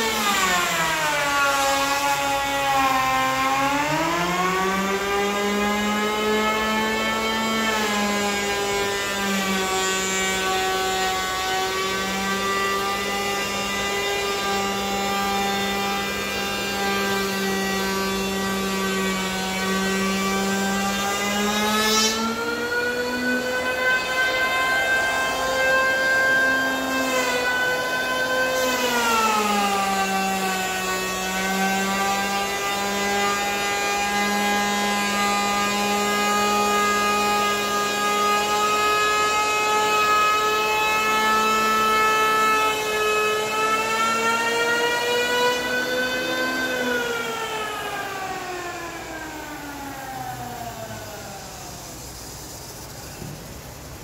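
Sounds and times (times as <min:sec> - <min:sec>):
electric hand planer whine: 0:00.0 - 0:53.5.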